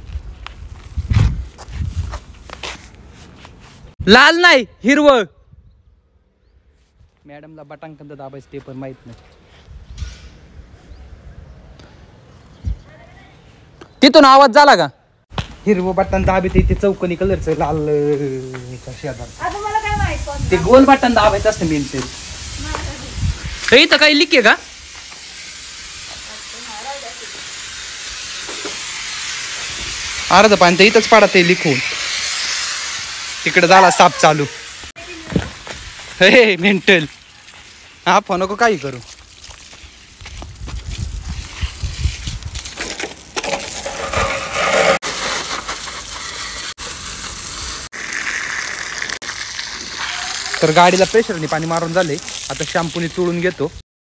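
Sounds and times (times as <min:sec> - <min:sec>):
faint steady hiss: 0:16.9 - 0:39.0
pressurised water spraying: 0:17.0 - 0:53.8
man speaking: 0:33.4 - 0:34.6.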